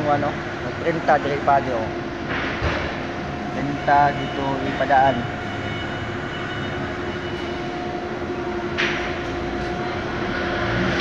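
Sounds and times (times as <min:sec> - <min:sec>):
roller machinery drone: 0:00.0 - 0:11.0.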